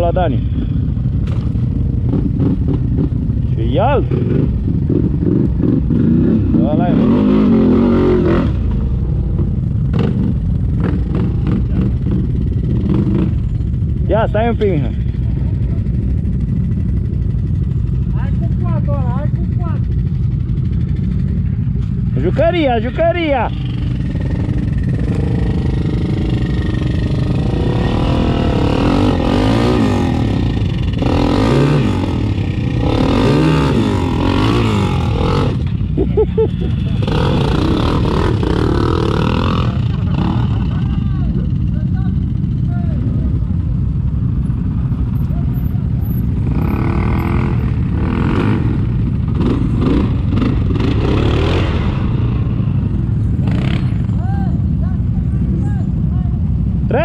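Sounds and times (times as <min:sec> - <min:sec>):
atv engines idling and revving: 0:00.0 - 0:57.0.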